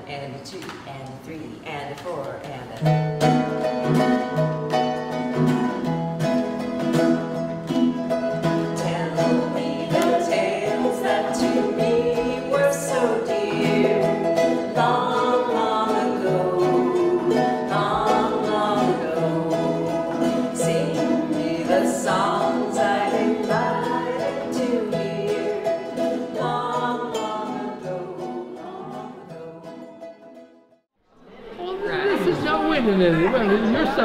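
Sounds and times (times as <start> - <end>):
ukuleles strumming chords: 0.1 - 30.8
woman singing: 8.6 - 30.0.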